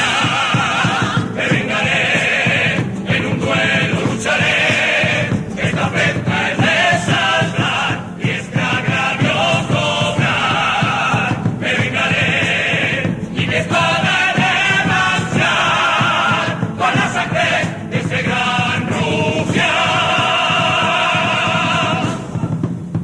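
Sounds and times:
chorus singing: 0:00.0 - 0:23.0
instrumental accompaniment: 0:00.0 - 0:23.0.

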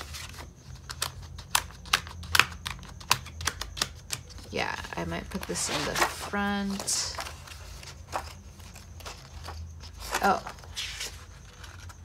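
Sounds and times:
planner pages clicking on discs: 0:00.0 - 0:12.0.

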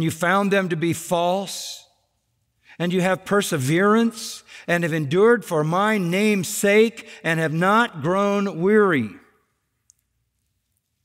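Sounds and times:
man speaking: 0:00.0 - 0:01.9, 0:02.8 - 0:09.3.

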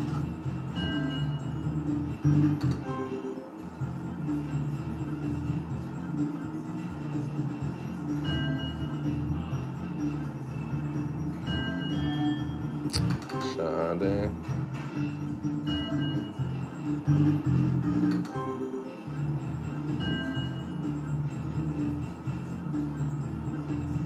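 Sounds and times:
slot machine beeping melody: 0:00.0 - 0:24.0.

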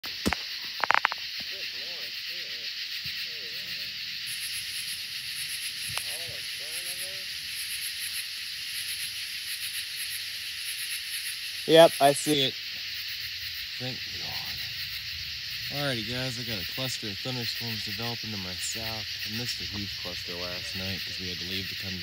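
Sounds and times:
night insects droning: 0:00.0 - 0:22.0.

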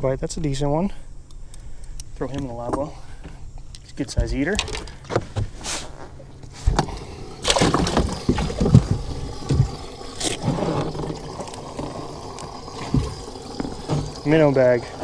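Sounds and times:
water splashing: 0:06.5 - 0:15.0.

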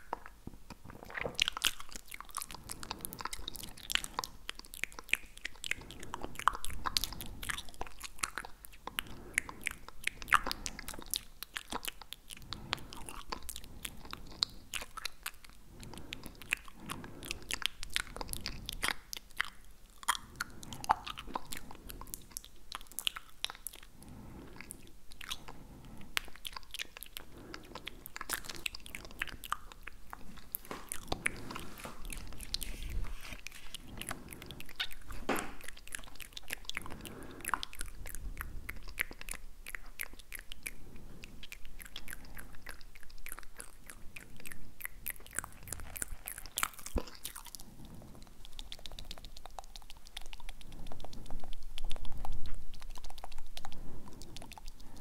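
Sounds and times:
tongue clicks and mouth smacks: 0:00.0 - 0:55.0.

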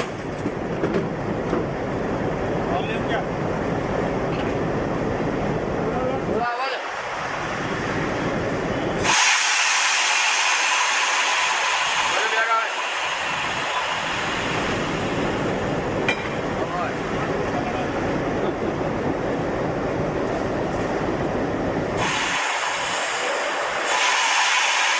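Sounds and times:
loud hiss of compressed air: 0:09.0 - 0:15.6, 0:22.0 - 0:24.9.

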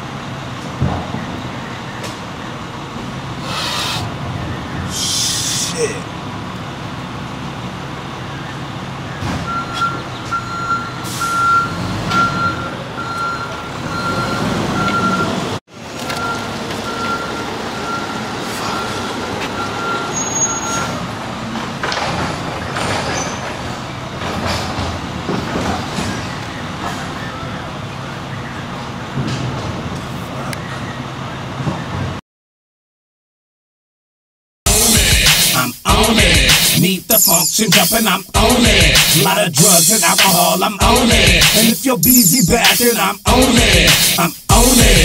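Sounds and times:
truck reversing alarm beeping: 0:00.0 - 0:06.0, 0:06.8 - 0:24.5, 0:25.2 - 0:29.2, 0:34.7 - 0:45.0
engine rumble: 0:00.0 - 0:32.2.

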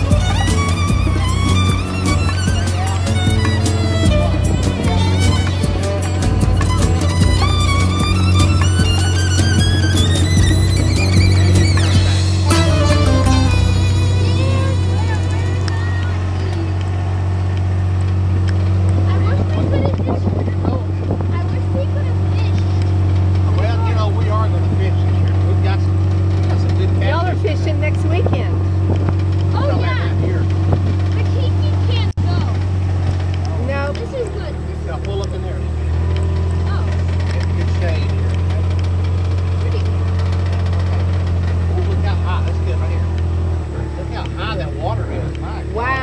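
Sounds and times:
fiddle music: 0:00.0 - 0:17.4
vehicle engine droning: 0:00.0 - 0:46.0.

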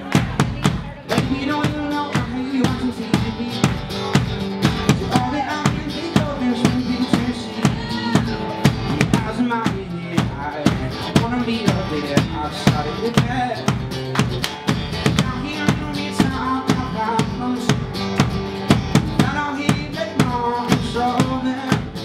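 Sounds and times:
person singing: 0:00.0 - 0:13.8, 0:15.0 - 0:18.1, 0:19.1 - 0:22.0
acoustic guitar strumming: 0:00.0 - 0:22.0
large drum beat: 0:00.0 - 0:22.0.

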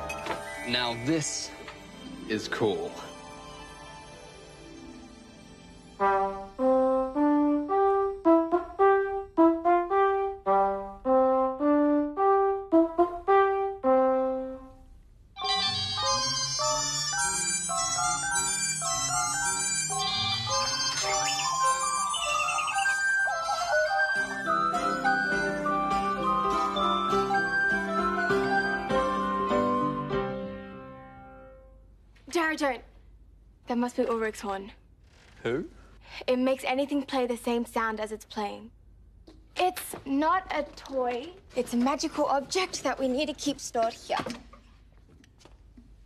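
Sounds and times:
french horn melody: 0:06.0 - 0:16.8
mobile phone ringtone tones: 0:15.4 - 0:24.3
piano notes: 0:15.4 - 0:31.8.

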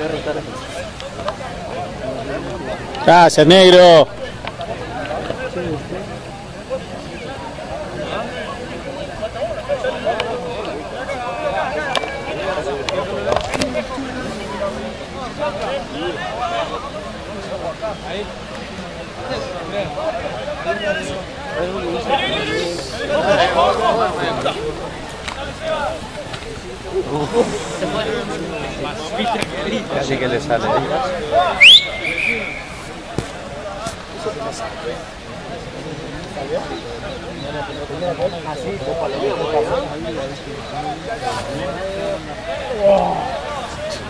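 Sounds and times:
people talking indistinctly: 0:00.0 - 0:44.0
distant overlapping voices calling: 0:31.1 - 0:44.0.

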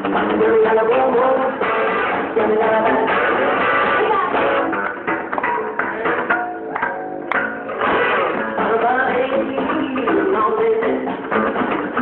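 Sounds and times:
rockabilly band playing: 0:00.0 - 0:12.0.

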